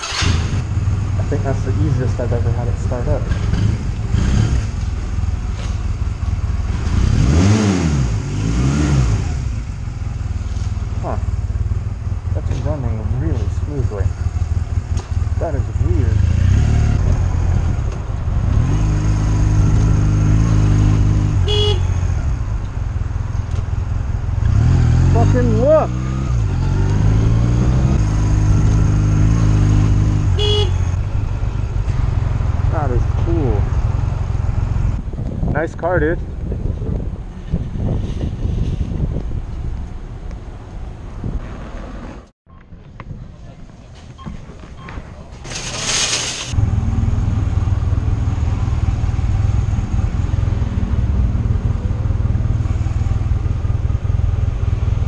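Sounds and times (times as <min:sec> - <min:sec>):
motorcycle engine revving: 0:00.0 - 0:35.2, 0:45.4 - 0:55.0
city traffic: 0:00.0 - 0:55.0.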